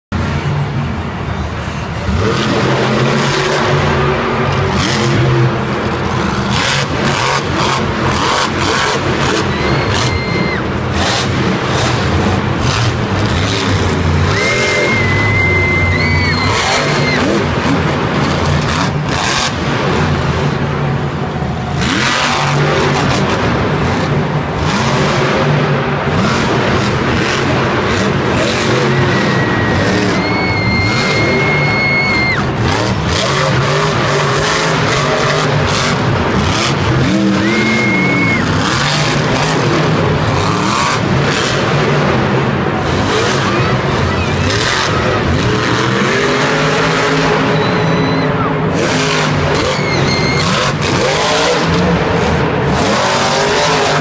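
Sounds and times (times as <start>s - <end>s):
monster truck engine revving: 0.0s - 54.0s.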